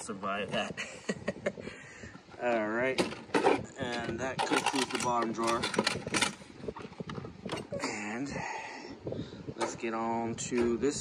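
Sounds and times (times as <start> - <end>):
plastic cases and tools clunking: 2.3 - 7.8, 9.6 - 11.0.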